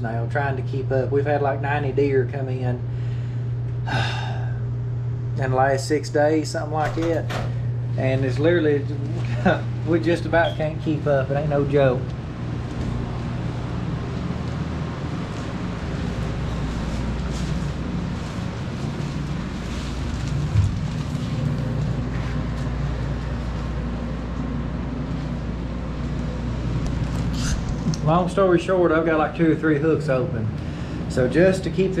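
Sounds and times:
refrigeration unit humming: 0.0 - 32.0.

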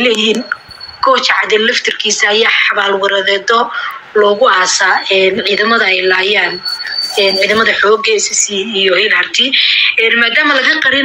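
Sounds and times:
person talking: 5.0 - 9.6.

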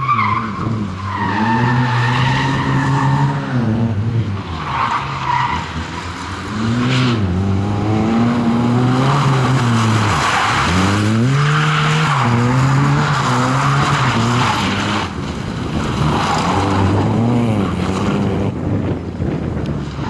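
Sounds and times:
car engine revving: 0.0 - 20.0
tyres skidding on tarmac: 0.0 - 20.0.

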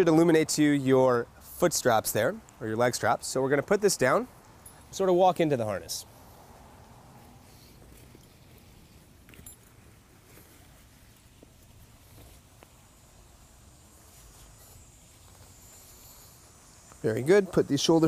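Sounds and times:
harness straps rustling: 4.1 - 17.3
metal buckles clicking: 4.4 - 5.0, 9.2 - 9.8
faint high insect buzz: 10.6 - 18.0.

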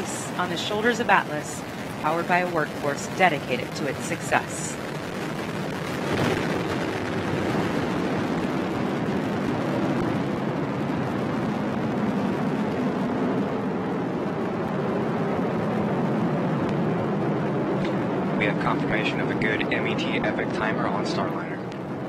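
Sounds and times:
rocket engine rumble: 0.0 - 22.0.

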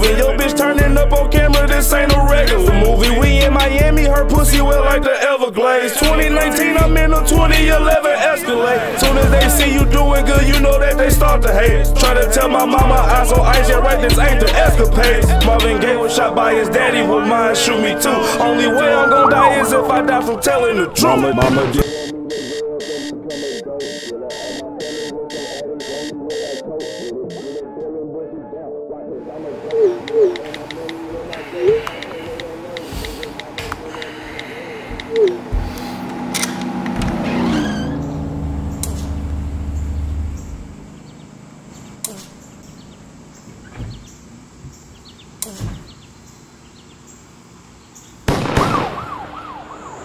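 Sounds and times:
siren-like wail: 16.0 - 27.7, 48.8 - 50.0
alarm clock beeping: 21.8 - 27.7
high whine like crickets: 29.3 - 36.1, 38.1 - 50.0
faint chirps: 39.7 - 48.2.

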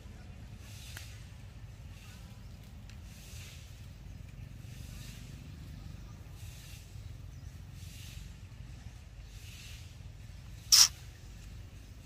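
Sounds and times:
soft hiss: 6.4 - 12.0.

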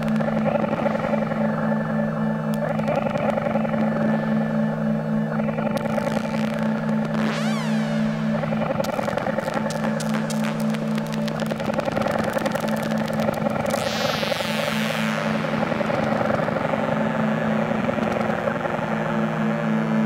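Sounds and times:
rapid crackling clicks: 0.0 - 1.2, 2.5 - 3.9, 5.5 - 7.5, 8.4 - 15.0, 17.9 - 18.7
low synthesizer drone: 0.0 - 20.0
high synth sweep gliding down: 5.5 - 11.1.

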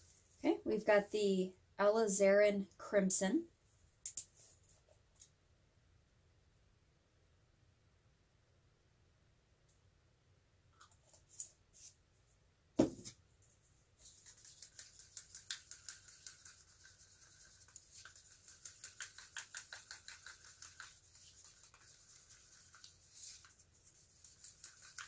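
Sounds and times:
sharp knock: 12.8 - 13.0
paint stirred in plastic cup: 13.6 - 25.0.

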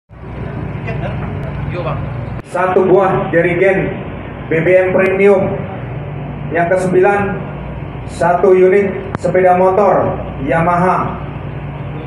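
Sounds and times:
indistinct voices chattering: 0.1 - 12.0
steady low rumble: 0.1 - 12.0.

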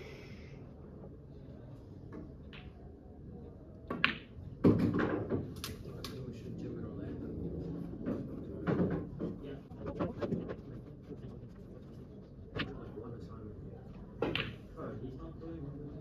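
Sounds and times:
snooker balls knocking: 3.9 - 5.6, 8.0 - 10.8.

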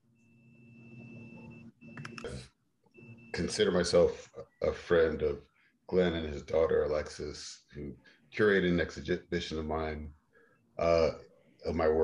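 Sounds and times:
high-pitched electronic tone: 0.1 - 2.4, 3.0 - 5.2.

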